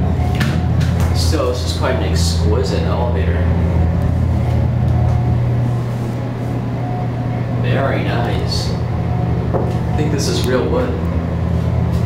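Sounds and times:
elevator machinery hum: 0.0 - 12.0.

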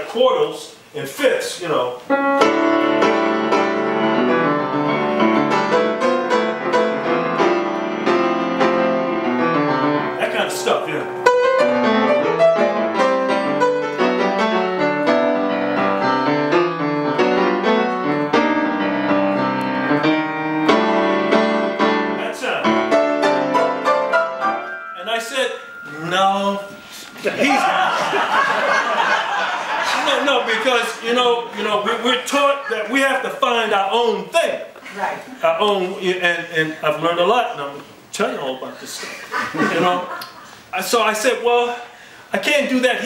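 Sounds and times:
jazz grand piano playing: 1.9 - 34.8.

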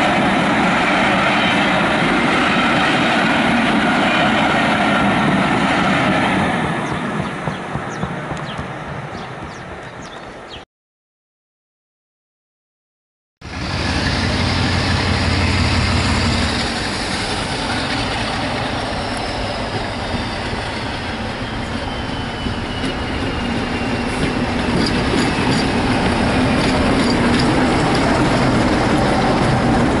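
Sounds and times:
diesel locomotive engine: 0.0 - 10.1, 13.4 - 30.0
train wheels clicking: 14.0 - 30.0.

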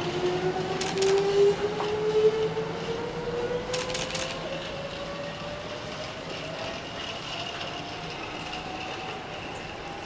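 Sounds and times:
train rolling rumble: 0.0 - 10.0.

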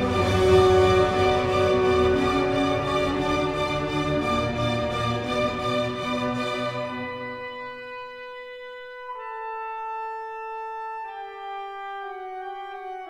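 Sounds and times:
wind instrument holding long notes: 0.0 - 13.0.

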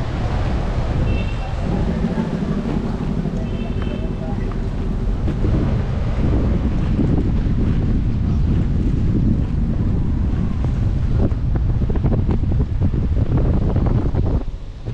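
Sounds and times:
wind buffeting microphone: 0.0 - 14.9.

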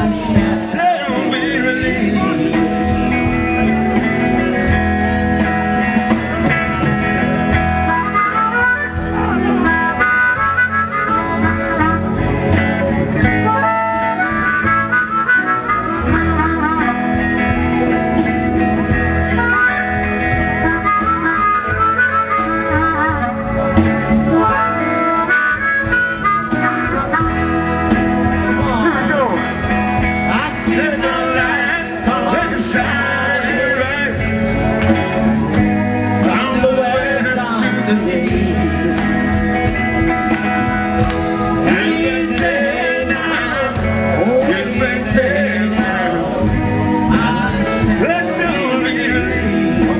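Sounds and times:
harmonica solo: 0.0 - 45.2
live band with guitars and drums: 0.0 - 49.9.

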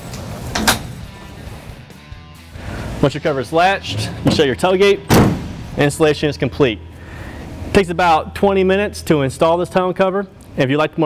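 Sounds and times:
latch snapping shut: 0.5 - 0.9.

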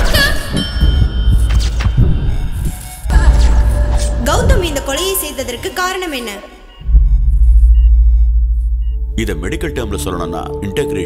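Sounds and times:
ct scanner low rumble: 6.7 - 10.0.

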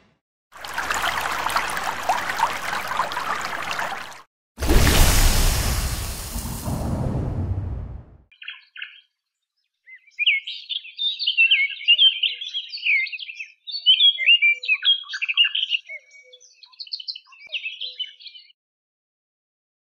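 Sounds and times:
rush of noise: 4.6 - 8.2
songbird chirping and twittering: 8.3 - 18.6.

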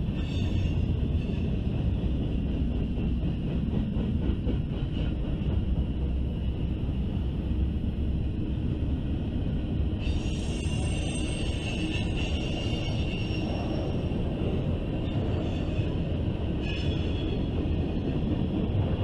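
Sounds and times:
freight train wheels rumbling on track: 0.0 - 19.0.

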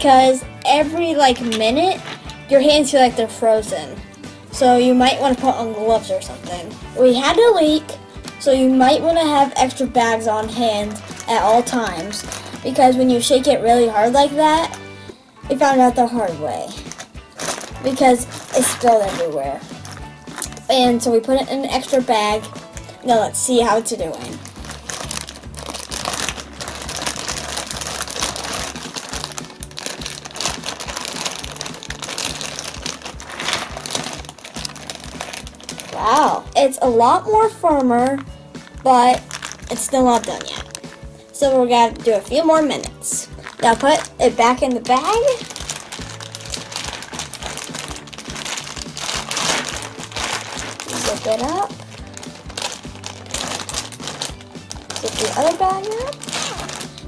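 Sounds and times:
background music with beat: 0.0 - 57.0
plastic bags crinkling: 1.2 - 2.6, 9.1 - 13.2, 16.6 - 36.6, 37.7 - 41.4, 42.1 - 57.0.

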